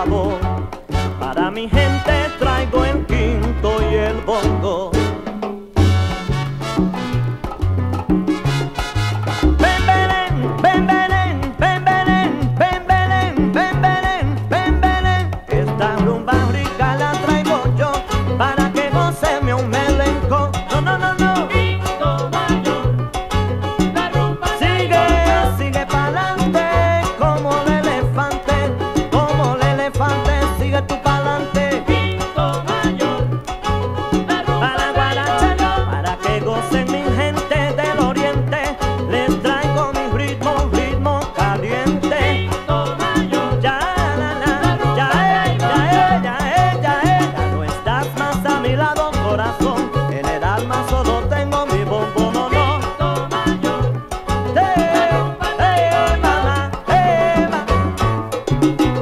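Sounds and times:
salsa band playing: 0.0s - 59.0s.

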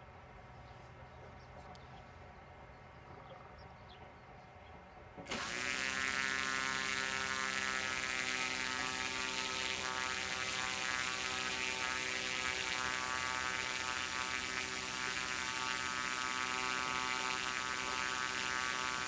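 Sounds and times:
propeller motor buzzing whine: 5.1s - 19.0s.

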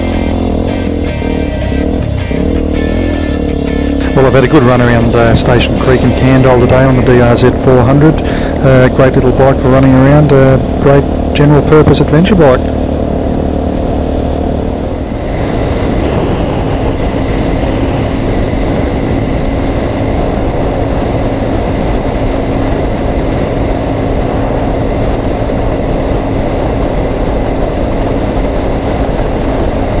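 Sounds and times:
motorcycle engine running: 0.0s - 30.0s
wind and road noise: 0.0s - 30.0s.

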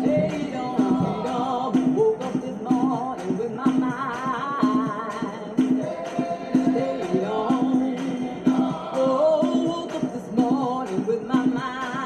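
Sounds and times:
group singing gospel song: 0.0s - 12.0s
steady percussive beat: 0.0s - 12.0s.

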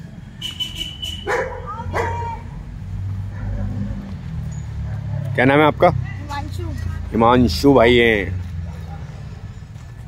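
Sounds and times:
dog barking: 1.2s - 2.4s, 3.3s - 4.1s, 4.8s - 5.4s.

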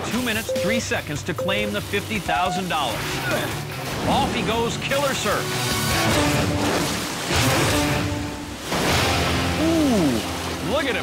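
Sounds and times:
background music: 0.0s - 11.0s
water splashing in a pool: 0.0s - 11.0s.

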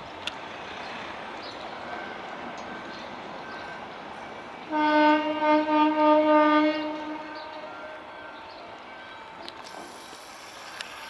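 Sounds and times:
locomotive horn blast: 4.7s - 8.1s.

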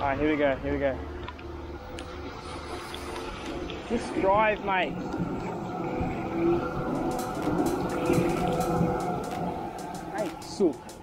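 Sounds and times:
tram motor whine: 1.0s - 11.0s
sharp clicks: 6.9s - 11.0s.

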